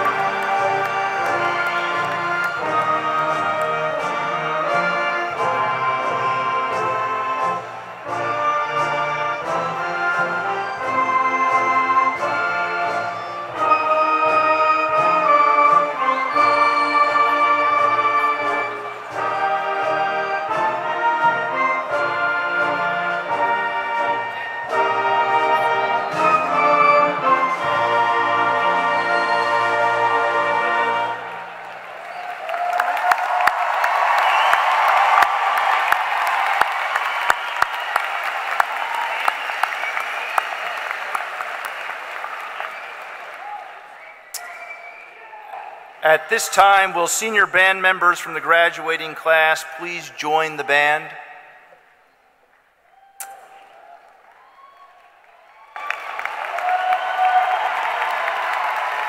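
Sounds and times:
large crowd applauding: 0:00.0 - 0:09.5, 0:29.2 - 0:47.0, 0:52.9 - 0:59.0
concert band playing chords: 0:00.0 - 0:31.4
close sharp hand claps: 0:31.7 - 0:44.9, 0:55.0 - 0:59.0.

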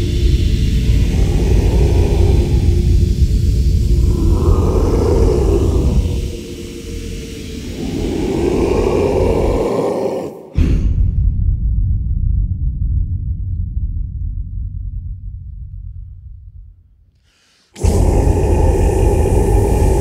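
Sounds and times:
choir growling low drone: 0:00.0 - 0:10.9, 0:17.8 - 0:20.0.

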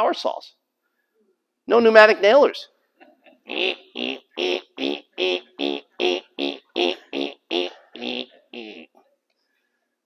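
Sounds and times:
man making mouth sound effects: 0:03.0 - 0:09.0.

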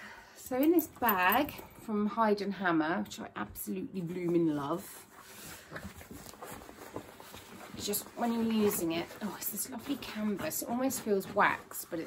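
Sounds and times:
canvas bag rustling: 0:04.3 - 0:12.0.

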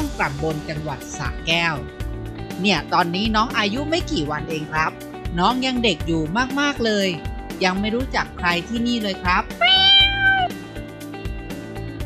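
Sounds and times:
kitten meowing: 0:09.5 - 0:10.6.

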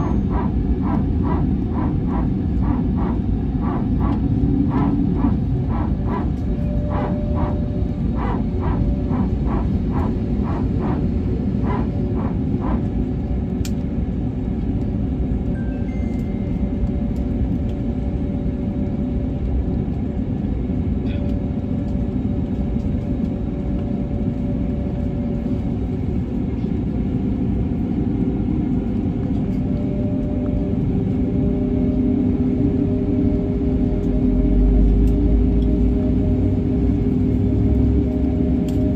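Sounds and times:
jet engine rumble: 0:00.0 - 0:38.9.

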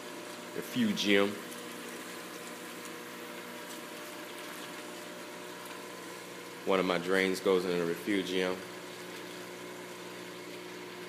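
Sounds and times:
water pouring and bubbling: 0:00.0 - 0:07.1, 0:08.6 - 0:11.0
low pump hum: 0:00.0 - 0:11.0.

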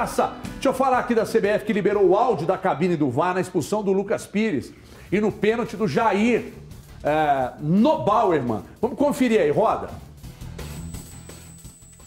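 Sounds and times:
quiet background music with bass: 0:00.0 - 0:12.0
thin high-pitched whine: 0:10.6 - 0:12.0.

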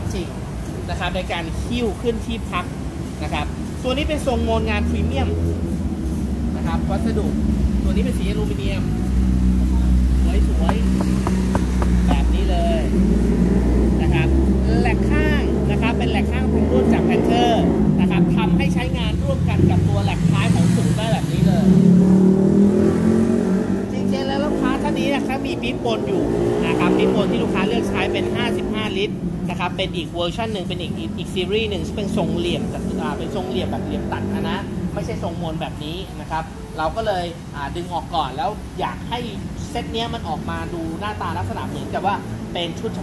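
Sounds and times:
vehicle engines running: 0:00.0 - 0:43.0
people talking: 0:00.9 - 0:05.5, 0:06.6 - 0:09.0, 0:09.6 - 0:11.4, 0:12.0 - 0:13.1, 0:14.0 - 0:21.8, 0:23.9 - 0:43.0.

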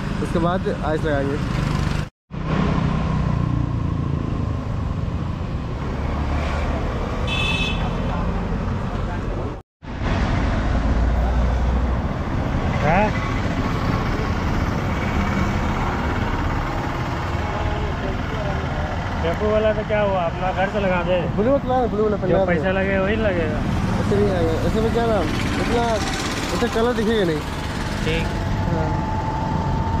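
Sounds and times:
road traffic passing: 0:00.0 - 0:30.0.

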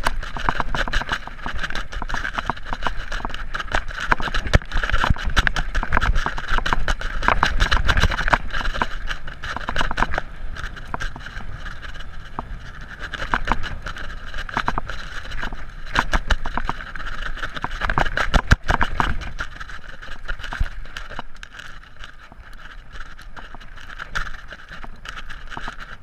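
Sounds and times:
mountain bike rattling: 0:00.0 - 0:26.0
wheels knocking on rocks: 0:00.0 - 0:26.0.

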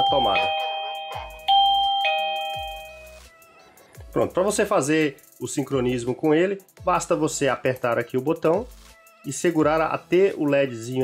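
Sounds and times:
two-note doorbell chime: 0:00.0 - 0:03.2.

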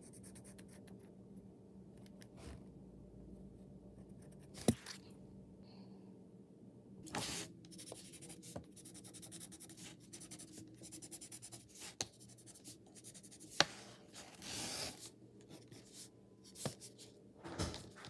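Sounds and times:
pen scratching on paper: 0:07.2 - 0:13.7.

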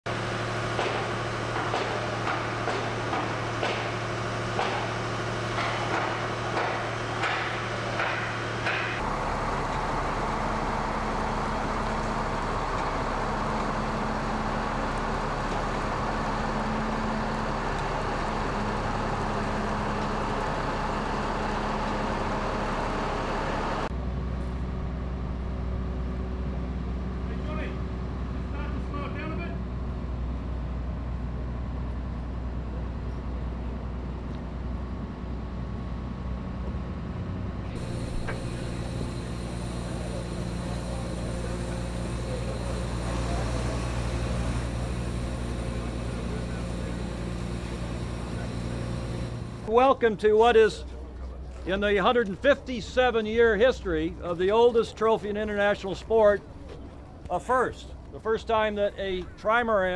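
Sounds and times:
truck diesel engine: 0:00.0 - 0:59.9
crane engine deep rumble: 0:00.1 - 0:59.9.

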